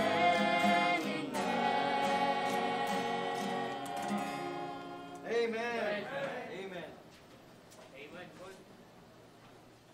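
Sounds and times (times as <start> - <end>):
acoustic guitar strums: 0.0 - 5.3
vocal ensemble singing hymn: 0.0 - 6.8.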